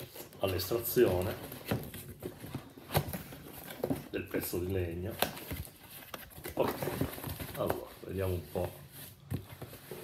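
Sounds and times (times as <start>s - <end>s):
cardboard rustling and scraping: 0.0s - 10.0s.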